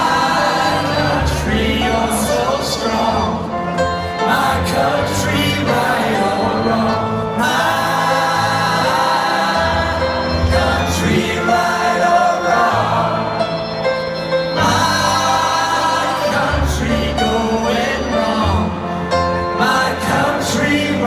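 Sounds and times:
rock band playing live: 0.0 - 21.0.

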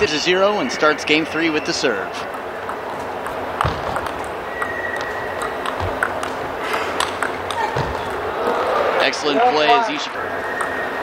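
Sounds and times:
hall background noise: 0.0 - 11.0
table tennis ball clicking: 2.2 - 8.3, 10.5 - 11.0.

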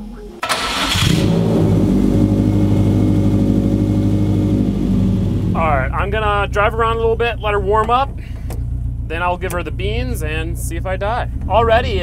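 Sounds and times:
car engine idling: 0.0 - 12.0
engine cranking: 0.4 - 1.4.

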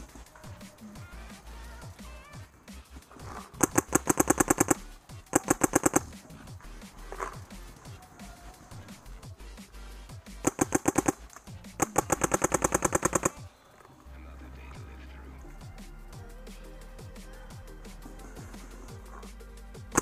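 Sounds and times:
paintball marker firing bursts: 0.0 - 13.5, 18.4 - 20.0.

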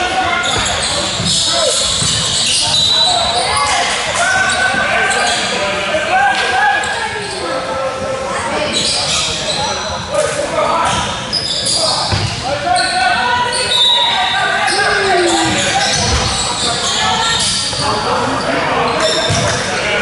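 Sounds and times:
voices echoing in a hall: 0.0 - 20.0.

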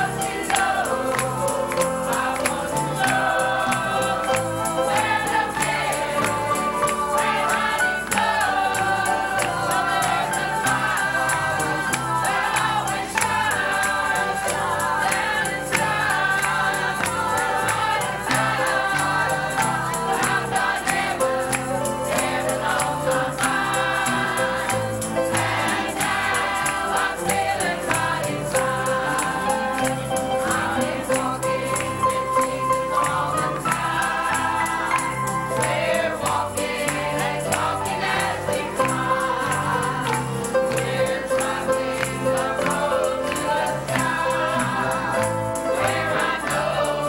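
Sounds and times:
choir singing gospel: 0.0 - 47.0
instrumental accompaniment: 0.0 - 47.0
sharp ticking beat: 0.0 - 47.0.

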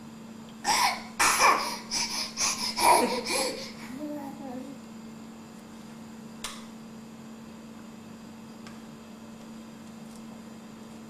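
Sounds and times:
breathy laughter: 2.4 - 3.7.

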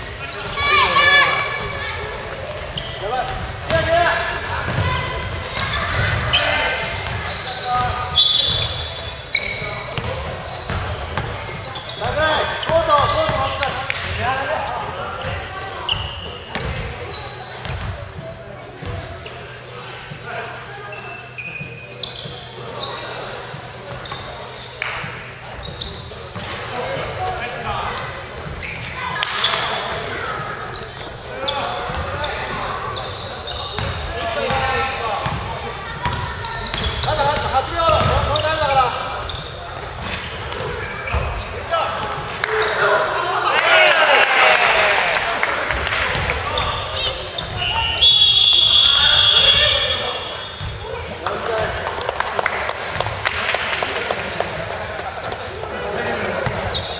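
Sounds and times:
high squeaks: 2.3 - 3.2, 4.4 - 10.9
basketball bouncing on wooden court: 16.5 - 16.9, 17.6 - 17.9, 33.8 - 34.6, 35.2 - 38.4.

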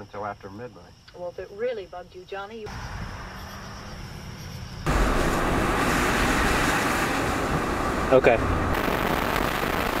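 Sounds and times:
car road and engine noise: 2.7 - 10.0.

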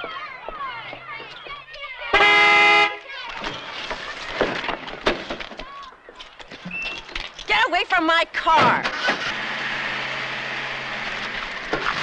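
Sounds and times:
car horn blast: 2.2 - 3.0
knocks and scuffling: 3.0 - 7.9.

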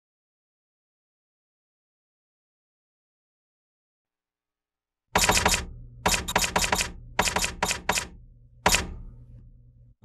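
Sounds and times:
typewriter keys striking: 5.2 - 8.9.

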